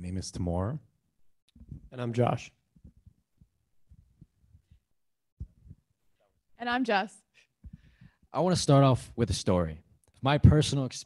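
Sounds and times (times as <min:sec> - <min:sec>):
faint low microphone thumps: 0:01.6 - 0:02.0, 0:05.4 - 0:05.9.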